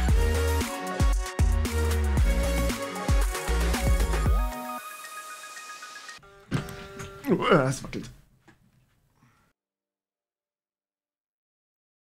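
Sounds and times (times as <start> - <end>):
electronic music held tones: 2.2 - 7.3
electric guitar note ringing: 6.2 - 7.3.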